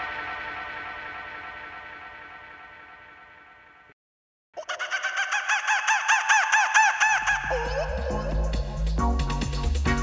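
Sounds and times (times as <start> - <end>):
deep bass line: 7.5 - 10.0
drums: 7.8 - 10.0.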